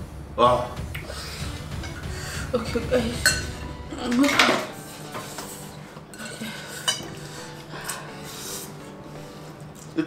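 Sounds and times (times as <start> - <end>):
forks clinking on glass bowls: 3.2 - 8.3.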